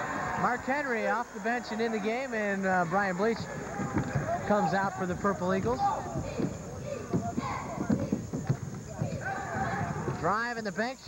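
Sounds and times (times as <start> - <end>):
crowd voices: 0.0 - 10.4
basketball dribbling: 2.8 - 10.4
sneakers thudding on hardwood: 2.9 - 10.4.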